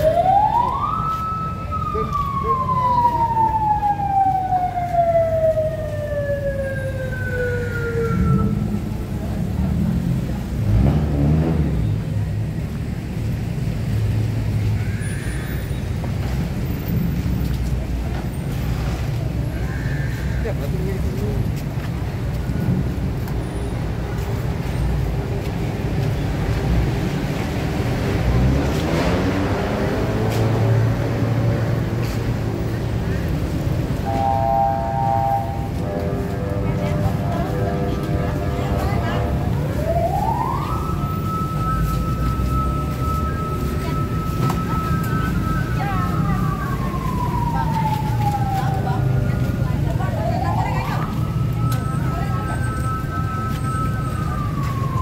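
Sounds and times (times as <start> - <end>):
siren winding down: 0.0 - 8.6, 39.2 - 55.0
street traffic rumble: 0.0 - 55.0
vehicle engine passing by: 9.1 - 12.4, 26.2 - 40.6.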